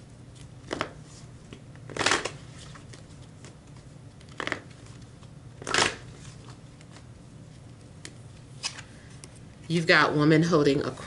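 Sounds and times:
cards shuffling: 0.3 - 9.5.

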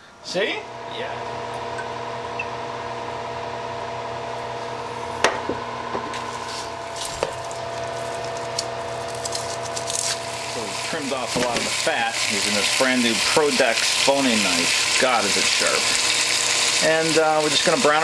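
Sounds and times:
oil crackling and sizzling: 6.1 - 18.0.

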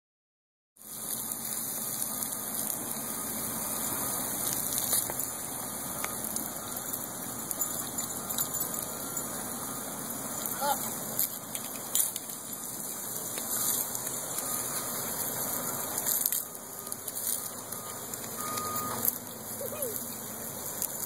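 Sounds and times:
garden hose spraying water: 0.8 - 21.0.

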